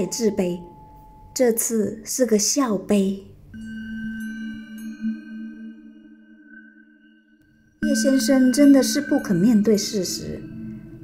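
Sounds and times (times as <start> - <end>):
eerie ambient music: 3.5 - 11.0.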